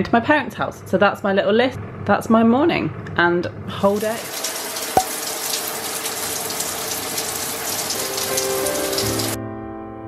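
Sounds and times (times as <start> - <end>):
shower water spraying: 3.9 - 9.4.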